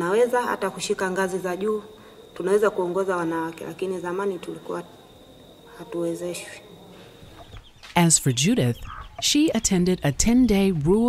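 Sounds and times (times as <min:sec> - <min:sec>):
faint steady high tone: 0:00.0 - 0:07.4
woman speaking: 0:08.0 - 0:11.0.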